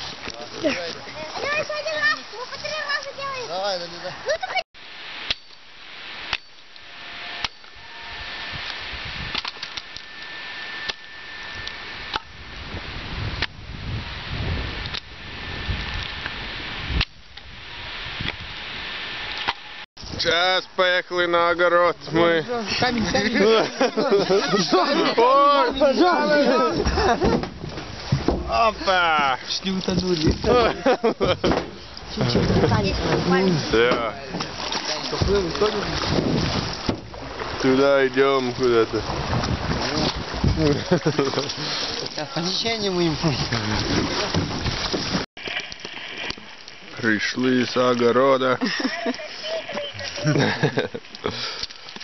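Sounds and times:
background hiss: 0.0s - 39.1s, 45.4s - 52.0s
water noise: 0.0s - 52.0s
wind noise on microphone: 6.0s - 20.4s, 29.9s - 33.8s, 35.1s - 37.6s, 38.6s - 45.6s.

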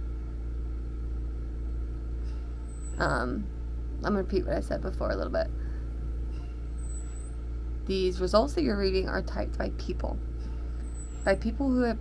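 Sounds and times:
appliance humming: 0.0s - 12.0s.

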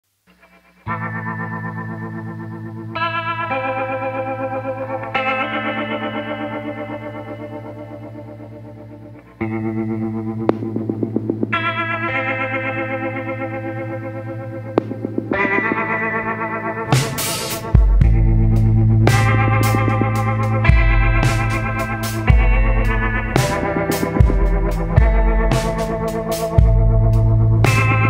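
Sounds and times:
electric guitar chords: 0.2s - 28.0s.

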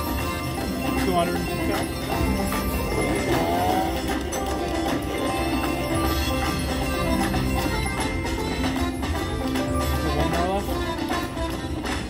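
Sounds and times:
win sound effects: 0.0s - 11.0s
slot machine game music: 0.0s - 12.0s.

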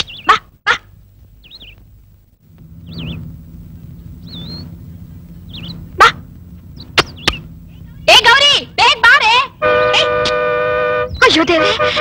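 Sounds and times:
bird chirping: 0.0s - 8.8s
low steady hum: 0.0s - 12.0s.

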